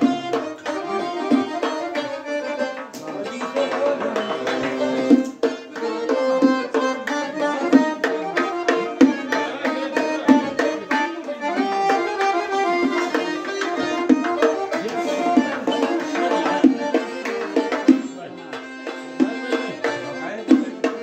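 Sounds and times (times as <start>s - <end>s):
accordion melody: 0.0s - 21.0s
hand drums beating: 0.0s - 21.0s.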